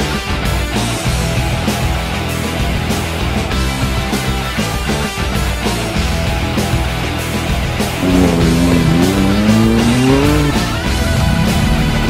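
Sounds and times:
heavy rock music: 0:00.1 - 0:12.0
car engine revving: 0:08.0 - 0:12.0.

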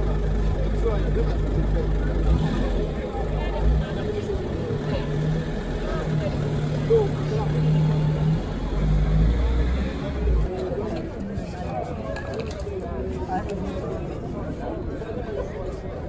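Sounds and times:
minibus engine rumbling: 0:00.0 - 0:10.9
people's voices: 0:00.0 - 0:16.0.

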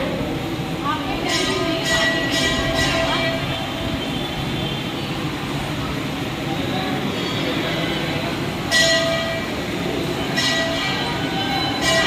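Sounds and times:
indistinct voices in crowded hall: 0:00.0 - 0:12.0.

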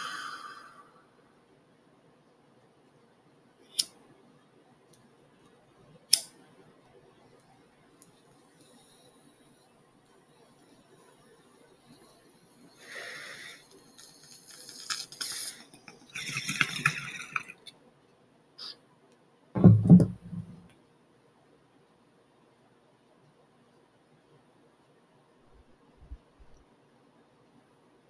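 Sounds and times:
bong thumping on wooden desk: 0:19.6 - 0:20.6
bong water bubbling: 0:19.6 - 0:20.6.

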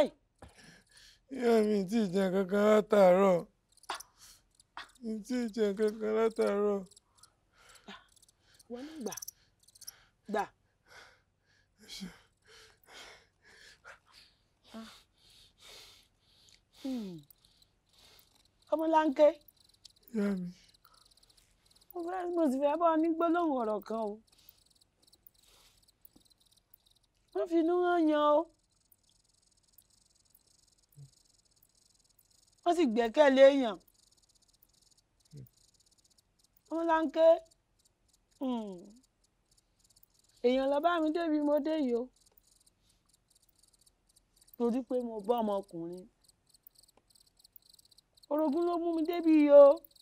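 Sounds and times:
crickets chirping: 0:00.0 - 0:10.5, 0:11.8 - 0:50.0
people talking: 0:01.3 - 0:03.4, 0:04.9 - 0:06.9, 0:08.7 - 0:09.2, 0:18.7 - 0:19.4, 0:20.2 - 0:20.6, 0:22.0 - 0:24.2, 0:27.4 - 0:28.5, 0:32.7 - 0:33.8, 0:36.7 - 0:37.4, 0:38.4 - 0:39.0, 0:40.4 - 0:42.1, 0:44.6 - 0:46.1, 0:48.3 - 0:49.8.

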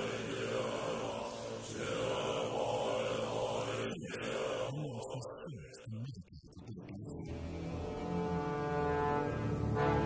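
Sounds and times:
deep brass horn drone: 0:07.3 - 0:10.0.

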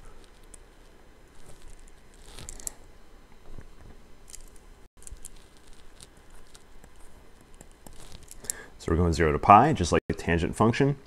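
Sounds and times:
stylus tapping and scratching screen: 0:05.0 - 0:08.5.

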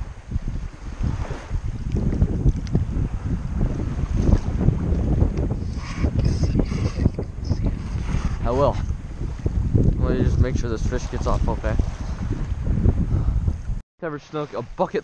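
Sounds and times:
wind buffeting microphone: 0:00.0 - 0:13.8.

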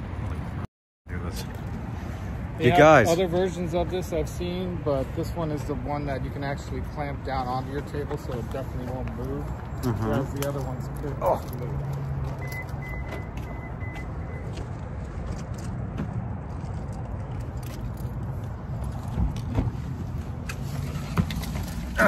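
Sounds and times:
car warning chime beeping: 0:12.4 - 0:14.6.

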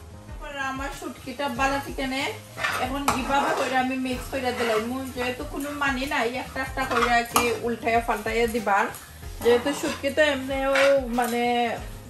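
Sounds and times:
metal spoon scraping frying pan: 0:01.6 - 0:12.0.

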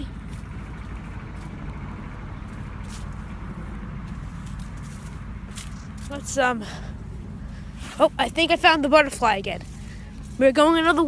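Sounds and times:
dry corn stalks rustling: 0:00.0 - 0:11.0
footsteps: 0:00.0 - 0:11.0
steady low rumble: 0:00.0 - 0:11.0.

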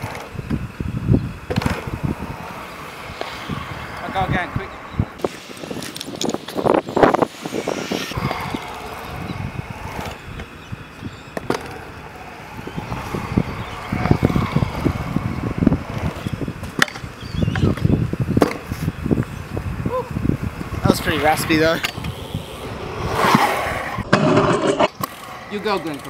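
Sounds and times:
scooter wheels rolling on concrete: 0:00.0 - 0:26.0.

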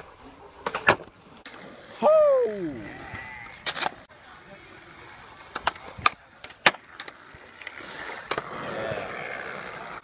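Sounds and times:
skateboard wheels rolling on concrete: 0:00.0 - 0:10.0
skateboard clack: 0:04.8 - 0:10.0.

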